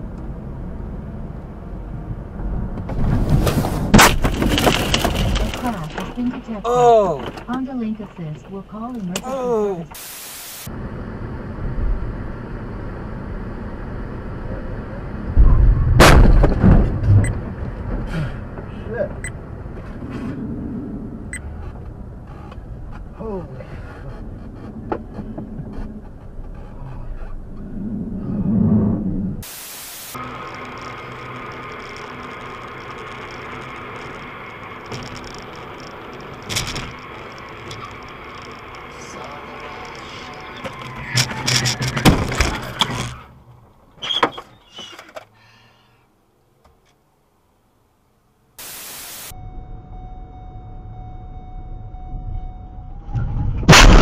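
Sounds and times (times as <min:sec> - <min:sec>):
car road noise: 0:00.0 - 0:54.0
loud crash impact: 0:15.6 - 0:17.1, 0:53.6 - 0:54.0
sharp bangs and knocks: 0:15.9 - 0:18.1, 0:53.4 - 0:54.0.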